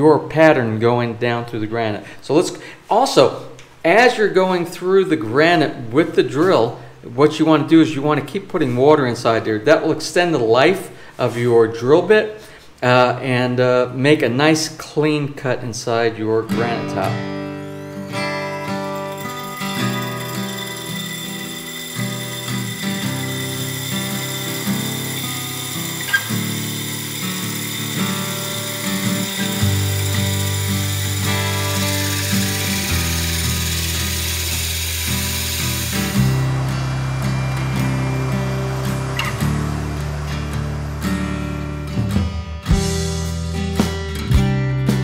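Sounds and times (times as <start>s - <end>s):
guitar background music: 16.4s - 45.0s
drill grinding into stone: 17.7s - 42.2s.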